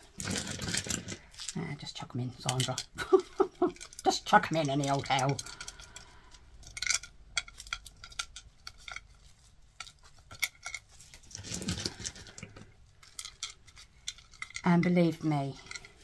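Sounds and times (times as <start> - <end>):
resin skulls clicking and clinking: 0.0 - 16.0.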